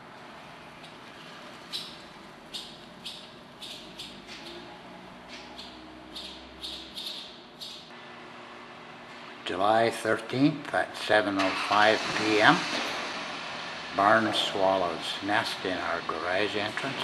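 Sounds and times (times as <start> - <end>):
swallows chirping: 1.6 - 4.7, 5.4 - 7.9.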